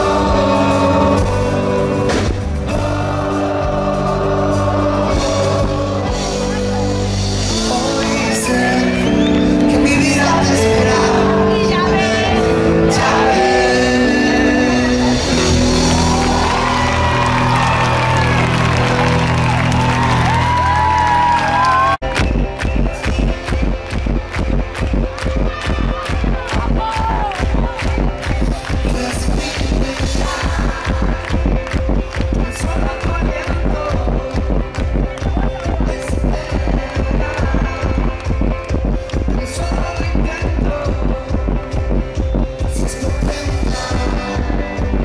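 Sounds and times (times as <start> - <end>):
live band music: 0.0 - 45.0
crowd cheering: 8.4 - 31.8
fast low beat: 22.0 - 45.0.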